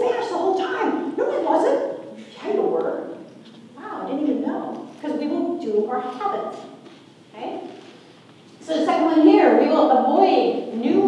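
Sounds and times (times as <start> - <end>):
woman speaking in a large hall: 0.0 - 11.0.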